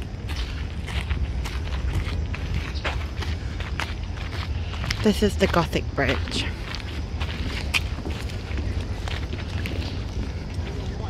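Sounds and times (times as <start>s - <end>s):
footsteps on wooden planks: 0.0s - 11.0s
wind rumble on microphone: 0.0s - 11.0s.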